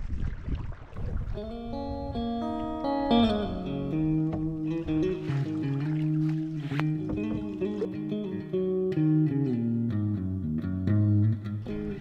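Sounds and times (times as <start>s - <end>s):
clean electric guitar blues: 1.4s - 12.0s.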